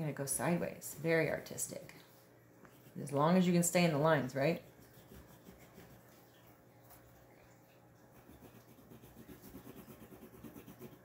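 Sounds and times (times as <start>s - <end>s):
colored pencils scratching on paper: 4.4s - 6.0s, 8.2s - 11.0s.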